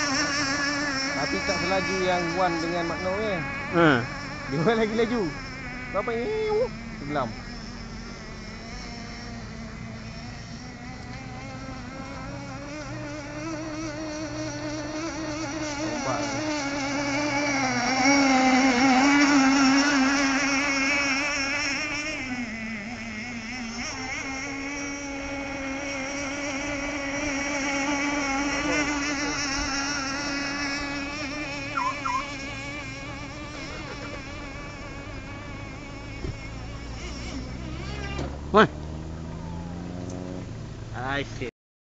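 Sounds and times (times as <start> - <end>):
model boat engine whining: 0.0 - 41.5.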